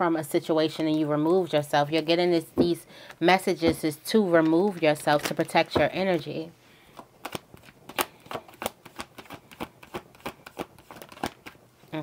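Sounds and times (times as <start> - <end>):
cards being shuffled: 6.9 - 11.6.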